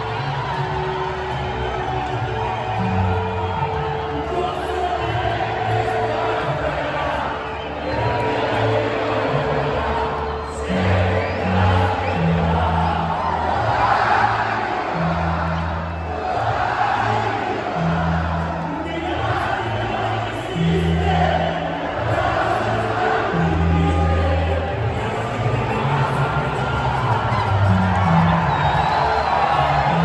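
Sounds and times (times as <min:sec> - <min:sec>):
crowd shouting and cheering: 0:00.0 - 0:30.0
music over sound system: 0:00.0 - 0:30.0.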